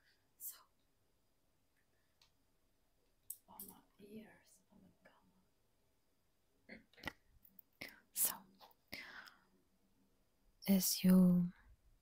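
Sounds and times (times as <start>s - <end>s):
woman whispering: 0.4s - 0.7s, 3.4s - 5.4s, 7.8s - 8.6s, 10.6s - 11.6s
breath: 8.9s - 9.6s.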